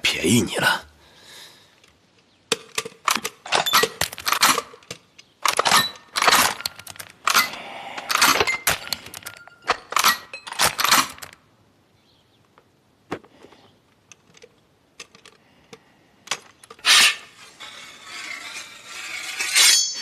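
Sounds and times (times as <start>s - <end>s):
rifle bolt clicking and rattling: 1.8s - 11.4s, 13.9s - 17.0s.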